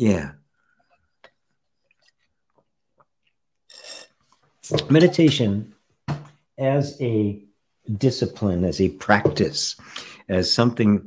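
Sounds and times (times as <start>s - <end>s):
slurp through metal straw: 3.7s - 4.5s.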